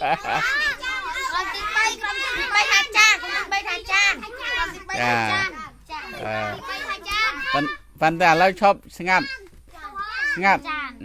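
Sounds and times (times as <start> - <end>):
young children speaking and calling: 0.0 - 11.0.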